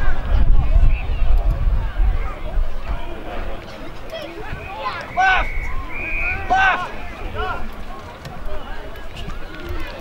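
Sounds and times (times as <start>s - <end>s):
wind rumble on microphone: 0.0s - 3.7s
distant voices calling: 2.1s - 10.0s.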